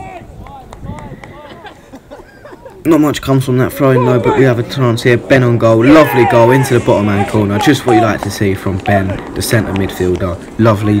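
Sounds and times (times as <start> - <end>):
distant players shouting: 3.5 - 11.0.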